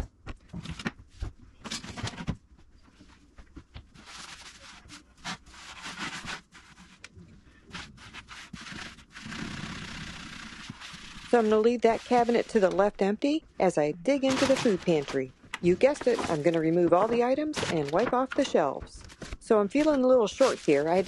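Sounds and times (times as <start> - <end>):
sponge scrubbing wooden shelf: 7.7 - 12.6.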